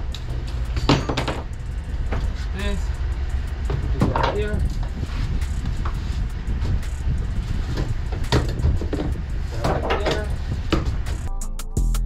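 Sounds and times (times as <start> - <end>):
steady low rumble: 0.0 - 11.3.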